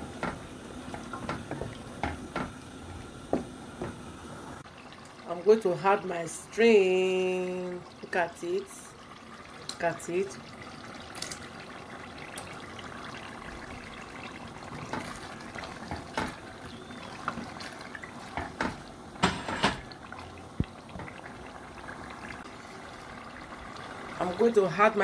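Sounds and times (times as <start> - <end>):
stew bubbling in a pot: 0.0 - 25.0
sharp knocks and clatters: 18.4 - 19.9.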